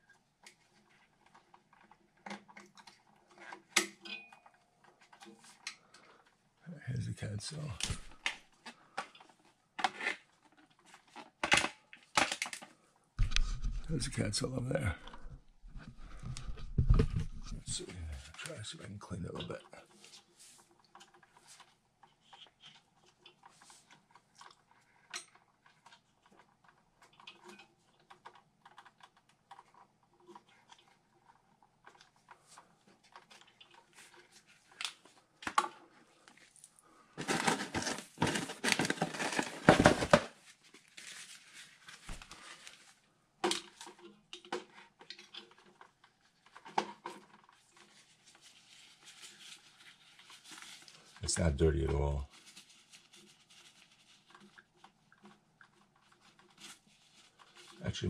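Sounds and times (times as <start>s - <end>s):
loud crinkling rustle: 19.8s - 43.0s, 43.6s - 51.3s, 52.0s - 57.8s.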